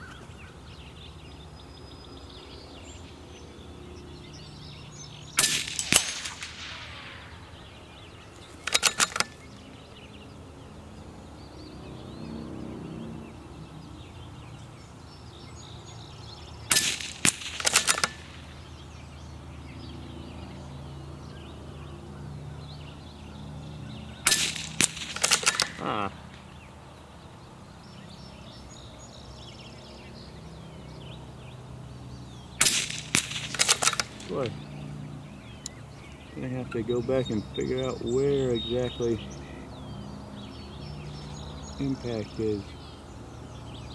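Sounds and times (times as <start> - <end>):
rifle shots: 5.4 - 7.6, 8.6 - 9.5, 16.7 - 18.7, 24.2 - 26.0, 32.6 - 34.5.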